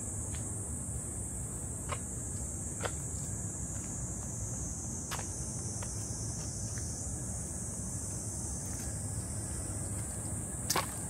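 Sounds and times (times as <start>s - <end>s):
cicadas singing: 0.0s - 11.0s.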